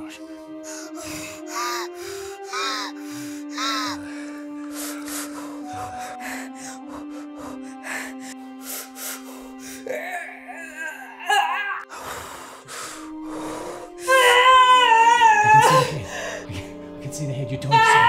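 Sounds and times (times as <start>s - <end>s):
soft background music: 0.0s - 18.0s
woman panting: 0.6s - 11.2s
woman wailing: 9.9s - 11.9s, 14.0s - 16.1s, 17.7s - 18.0s
woman crying out: 14.1s - 15.9s, 17.7s - 18.0s.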